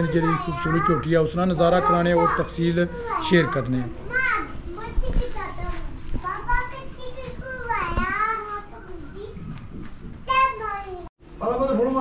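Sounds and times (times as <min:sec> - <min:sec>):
high-pitched voices calling out: 0:00.0 - 0:09.6, 0:10.2 - 0:11.1.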